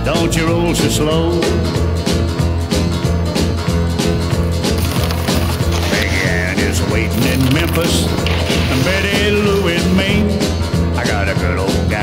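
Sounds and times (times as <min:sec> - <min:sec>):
country music instrumental: 0:00.0 - 0:12.0.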